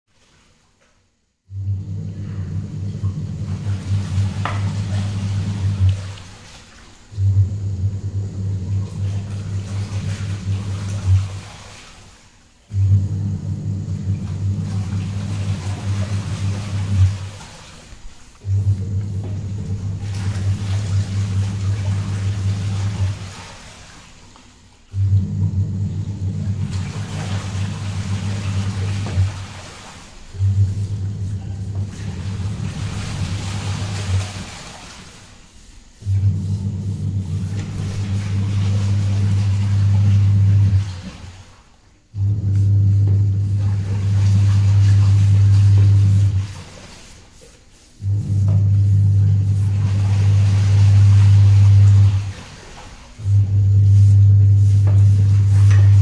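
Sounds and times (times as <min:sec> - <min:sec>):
steady low hum: 0:01.4 - 0:29.6, 0:30.2 - 0:41.4, 0:42.1 - 0:47.0, 0:47.7 - 0:56.0.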